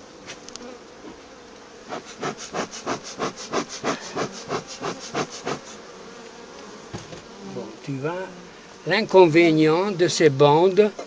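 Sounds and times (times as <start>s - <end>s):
honeybees humming: 0.0s - 11.0s
bellows puffing: 1.9s - 5.9s.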